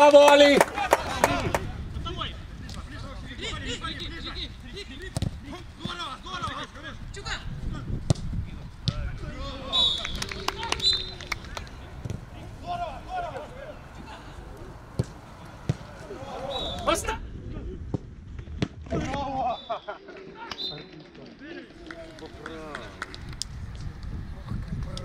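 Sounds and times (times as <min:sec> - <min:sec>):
footballers calling out: 0:00.0 - 0:07.9, 0:08.5 - 0:17.2
ball being kicked: 0:05.1 - 0:06.0, 0:12.0 - 0:12.3, 0:14.9 - 0:15.9.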